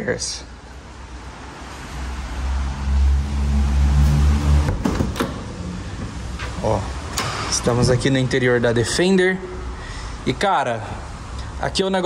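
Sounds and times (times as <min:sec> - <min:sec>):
people climbing into vehicle cab: 0:04.0 - 0:07.9.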